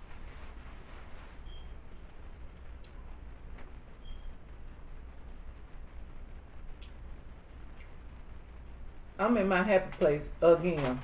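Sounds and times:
steady low hum: 0:00.0 - 0:11.0
brief squeak: 0:01.4 - 0:01.8.

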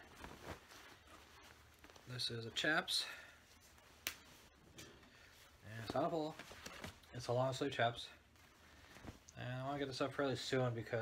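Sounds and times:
garment rustling: 0:00.0 - 0:11.0.

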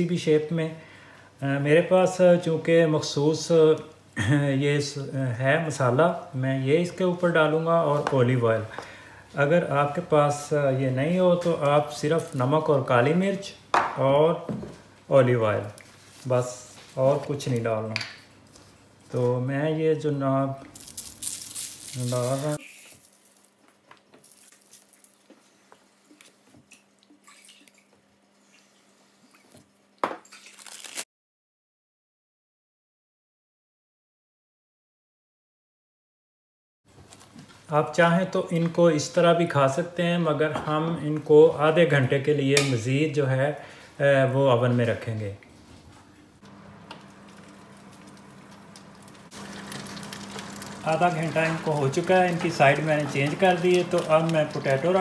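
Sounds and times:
chicken sizzling: 0:21.2 - 0:23.2, 0:46.5 - 0:55.0
fan oven humming: 0:46.3 - 0:55.0
oil drizzling small ticks: 0:46.9 - 0:54.8.

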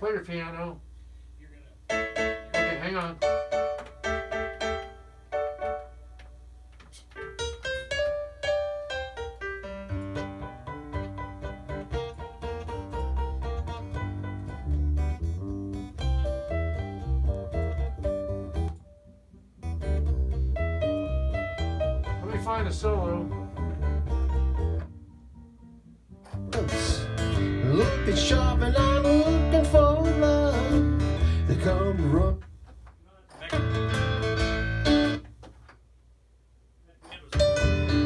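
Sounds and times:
piano playing: 0:01.9 - 0:06.6, 0:07.2 - 0:32.4, 0:33.5 - 0:35.2, 0:37.3 - 0:38.0.

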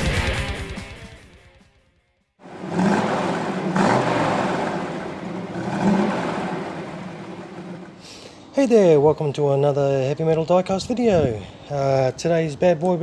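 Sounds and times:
car engine revving: 0:02.4 - 0:08.2.

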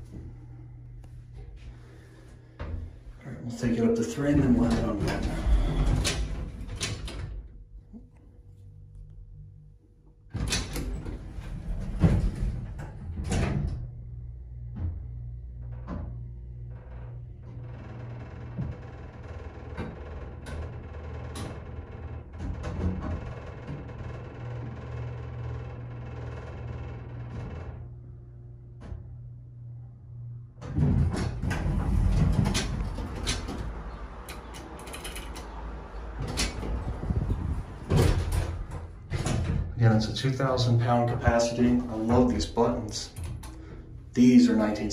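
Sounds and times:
elevator rumbling and knocks: 0:00.0 - 0:07.7, 0:10.3 - 0:28.0, 0:28.6 - 0:44.9
elevator whine: 0:00.0 - 0:44.9
elevator doors knocking shut: 0:03.6 - 0:07.5, 0:10.4 - 0:14.0, 0:30.6 - 0:44.7
elevator pump motor humming: 0:10.3 - 0:44.9.

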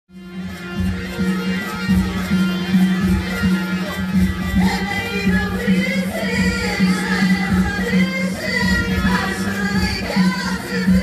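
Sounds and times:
plucked string music with beat: 0:00.1 - 0:11.0
person singing: 0:04.6 - 0:11.0.

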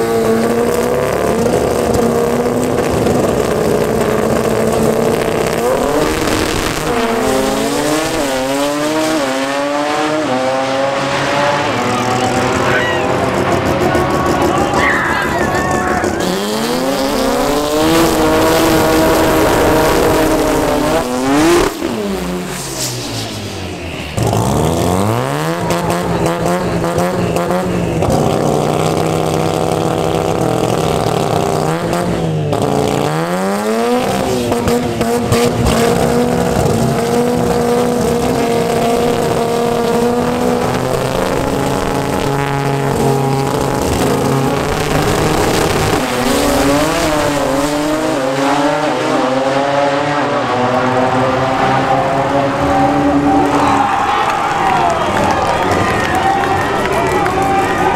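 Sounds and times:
car accelerating at full throttle: 0:00.0 - 0:57.9
car engine revving hard: 0:00.0 - 0:57.9
tire squeal: 0:11.3 - 0:29.4.

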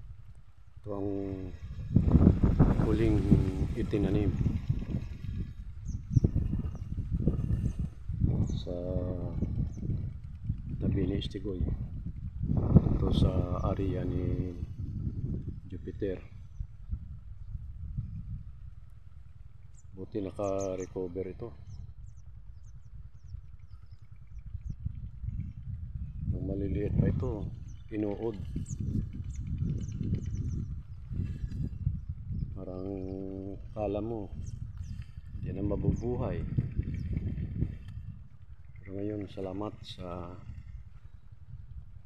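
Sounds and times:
low uneven rumble: 0:00.0 - 0:42.0
wind buffeting microphone: 0:00.0 - 0:42.0.

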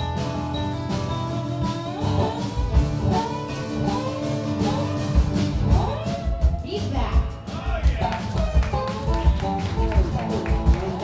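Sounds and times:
lap steel guitar notes: 0:00.0 - 0:07.1
steady drum beat: 0:00.0 - 0:11.0.

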